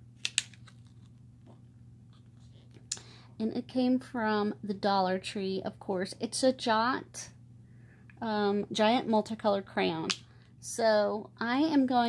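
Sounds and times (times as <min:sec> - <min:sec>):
low steady hum: 0:00.0 - 0:12.0
plastic blister pack clicks: 0:00.2 - 0:00.9.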